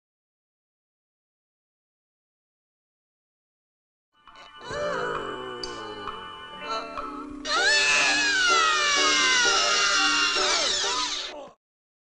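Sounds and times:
background music: 0:04.2 - 0:11.5
cartoon character shrill cry: 0:07.5 - 0:11.5.

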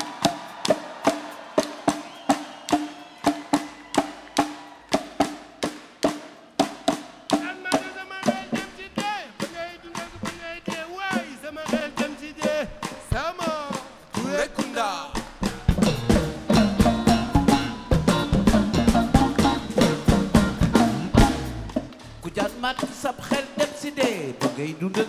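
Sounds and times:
percussive beat: 0:00.0 - 0:25.0
person singing: 0:07.3 - 0:15.3, 0:16.4 - 0:21.4, 0:22.2 - 0:25.0.

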